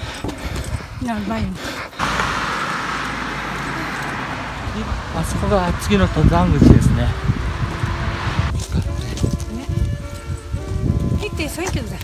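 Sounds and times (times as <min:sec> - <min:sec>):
car passing by: 0:02.0 - 0:08.6.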